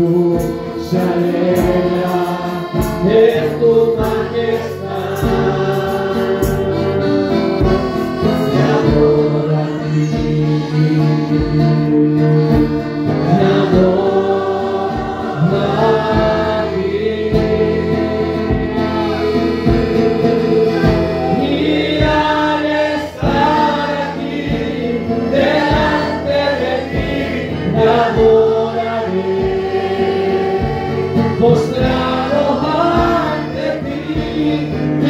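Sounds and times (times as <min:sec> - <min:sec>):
amplified band with steady beat: 0:00.0 - 0:35.0
congregation singing: 0:00.0 - 0:35.0.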